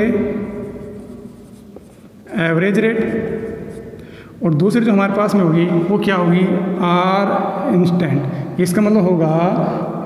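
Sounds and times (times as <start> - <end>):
marker pen writing on whiteboard: 0.0 - 2.4, 3.0 - 4.1.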